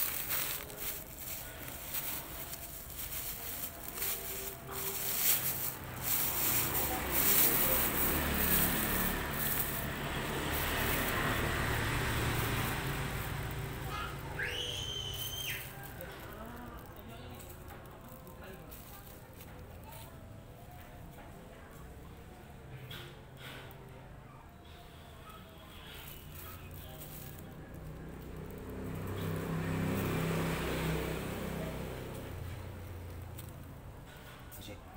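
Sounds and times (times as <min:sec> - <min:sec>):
plastic liner rustling: 0:00.0 - 0:13.6
engine passing by: 0:00.0 - 0:20.1, 0:24.6 - 0:34.5.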